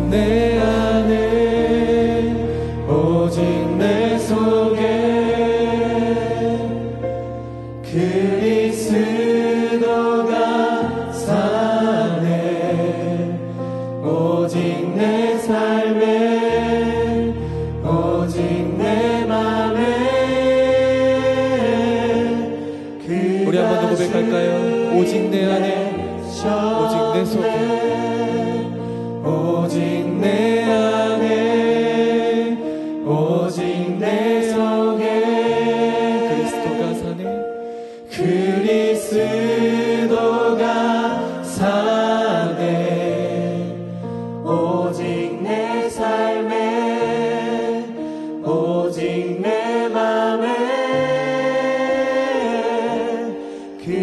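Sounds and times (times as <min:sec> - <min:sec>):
group singing together: 0:00.0 - 0:54.0.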